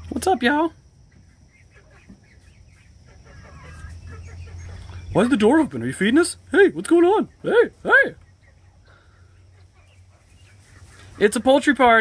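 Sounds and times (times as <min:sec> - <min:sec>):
hens clucking: 0:00.0 - 0:12.0.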